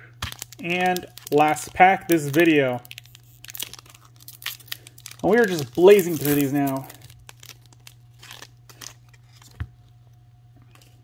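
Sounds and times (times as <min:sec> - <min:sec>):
foil pack crinkling and tearing: 0:00.2 - 0:09.6.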